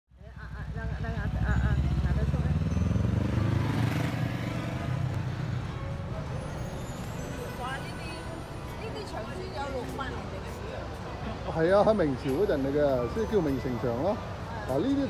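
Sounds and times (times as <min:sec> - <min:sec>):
vehicle engine rumble: 0:00.1 - 0:15.0.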